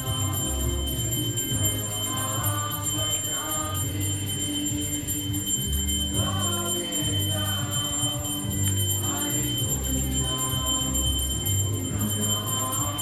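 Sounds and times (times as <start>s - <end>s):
devotional group singing: 0.0s - 13.0s
hand cymbals jingling: 0.0s - 13.0s.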